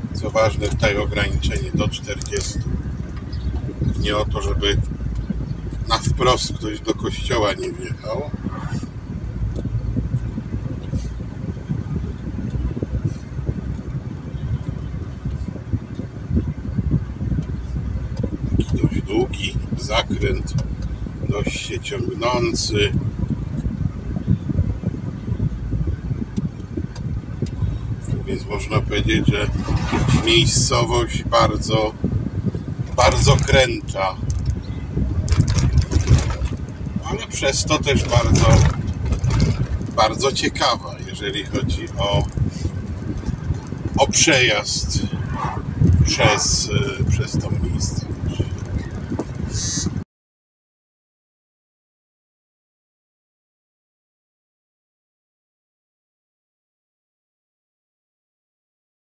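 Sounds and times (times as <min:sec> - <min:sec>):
car engine and tyres rumbling: 0:00.0 - 0:50.0.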